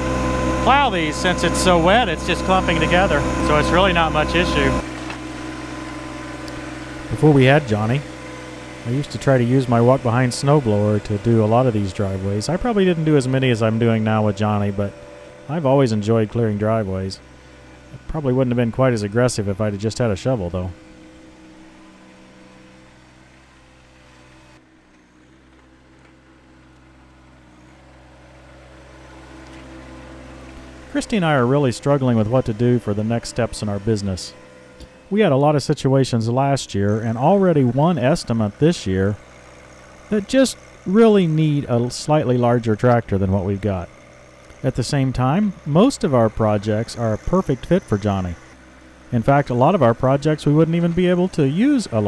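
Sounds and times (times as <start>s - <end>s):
blade pushing wet snow: 0.0s - 20.7s, 29.3s - 52.0s
tractor diesel engine humming: 0.0s - 52.0s.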